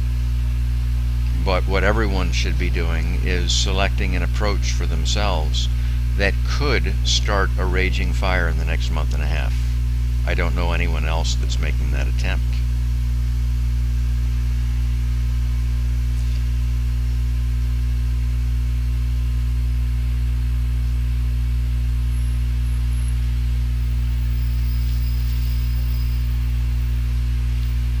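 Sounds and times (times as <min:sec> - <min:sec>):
electrical mains hum: 0:00.0 - 0:28.0.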